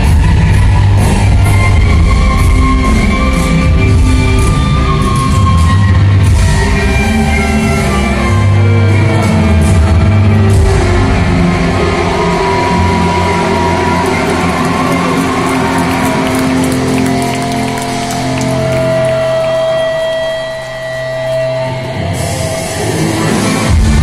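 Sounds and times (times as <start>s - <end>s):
live rock band through pa: 0.0s - 24.0s.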